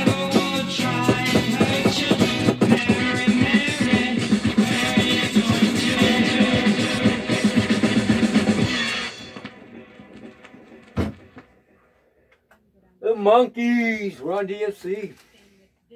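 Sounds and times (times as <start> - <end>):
song with guitar and drums: 0.0 - 11.4.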